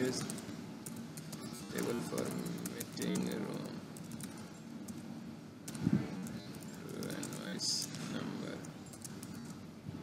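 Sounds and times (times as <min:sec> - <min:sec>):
computer keyboard typing: 0:00.0 - 0:05.0, 0:05.6 - 0:09.6.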